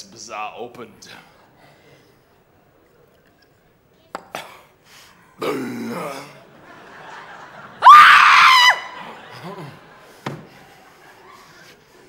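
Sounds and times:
person coughing: 5.4s - 6.4s
loud held shout: 7.8s - 9.1s.

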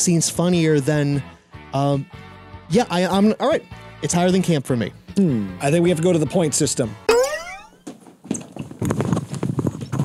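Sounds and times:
cartoon boing rising in pitch: 7.1s - 7.8s
hurried footsteps and scuffling: 7.8s - 10.0s.

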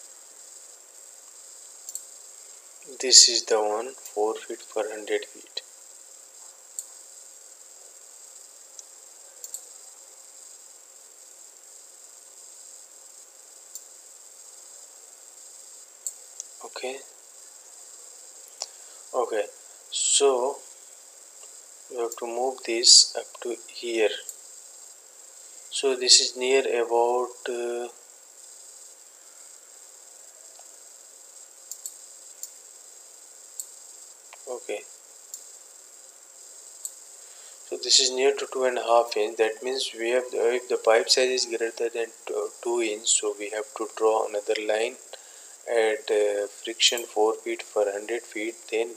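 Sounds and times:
high-pitched background whine: 0.0s - 48.9s
high-pitched hiss: 0.0s - 48.9s
computer mouse clicks: 1.9s - 2.1s, 9.4s - 9.7s, 31.7s - 32.6s
murmured voice: 16.6s - 17.0s, 37.7s - 45.0s.

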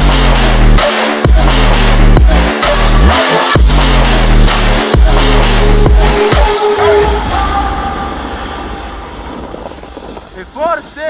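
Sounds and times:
background music: 0.0s - 11.0s
wind and snow rushing: 6.0s - 11.0s.

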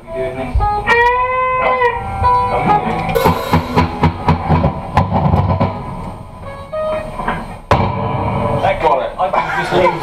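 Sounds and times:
electric guitar: 0.0s - 8.1s
rock band playing: 2.0s - 6.0s
sharp drum hits: 3.2s - 5.9s.

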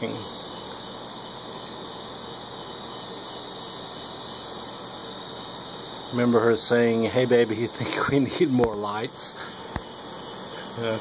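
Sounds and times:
faint hum: 0.0s - 11.0s
steady background hiss: 0.0s - 11.0s.

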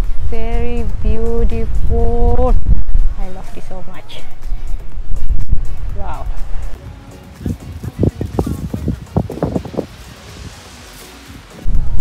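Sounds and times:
wind buffeting microphone: 0.0s - 10.6s.

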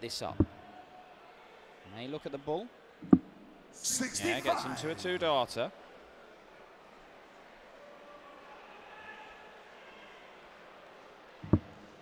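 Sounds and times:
murmur of arena crowd: 0.0s - 12.0s.

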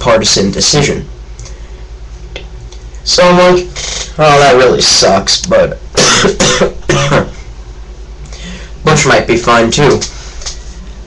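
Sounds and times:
boy coughing: 6.0s - 7.4s.

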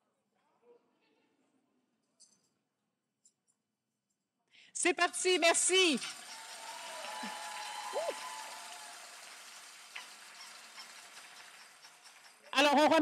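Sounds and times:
audience applause: 5.7s - 13.0s.

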